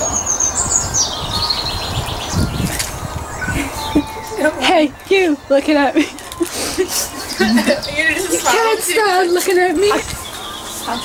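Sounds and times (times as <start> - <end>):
small bird chirping: 0.3 - 4.6.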